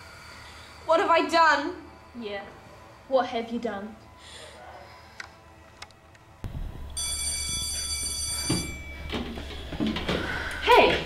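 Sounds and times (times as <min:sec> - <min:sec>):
low hum: 0:04.9 - 0:10.7
electronic school bell buzzing: 0:07.0 - 0:09.4.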